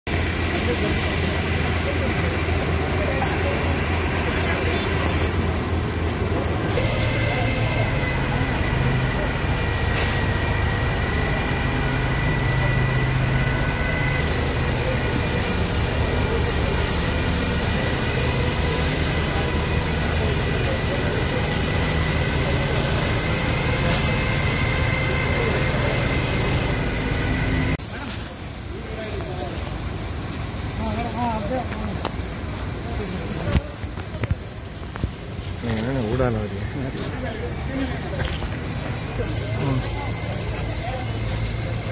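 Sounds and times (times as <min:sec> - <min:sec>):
fire engine pump running: 0:00.0 - 0:41.9
hose spraying onto road: 0:00.1 - 0:41.9.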